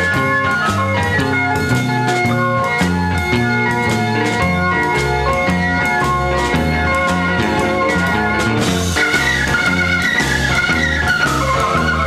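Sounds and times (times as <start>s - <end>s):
bass line: 0.0s - 12.0s
drums: 0.0s - 12.0s
held organ chords: 0.0s - 12.0s.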